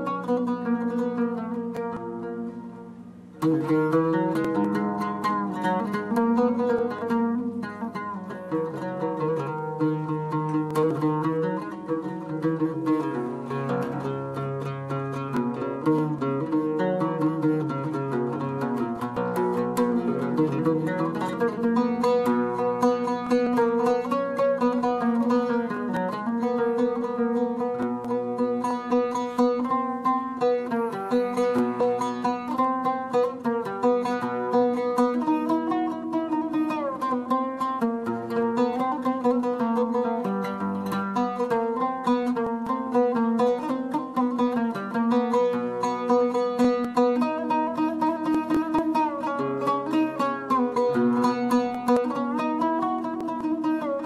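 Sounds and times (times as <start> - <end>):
oud playing plucked melody: 0.0 - 54.0.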